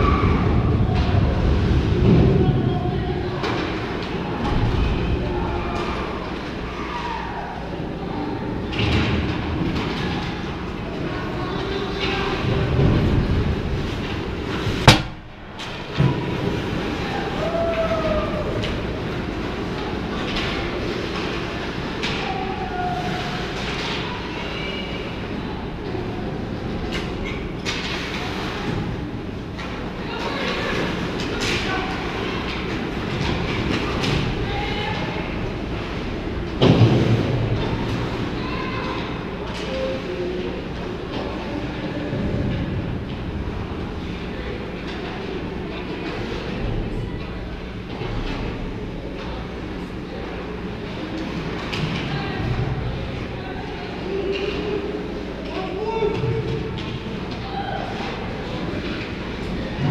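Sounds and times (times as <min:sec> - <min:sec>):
ice rink rumble: 0:00.0 - 0:59.9
sharp loud crack: 0:14.9 - 0:15.5.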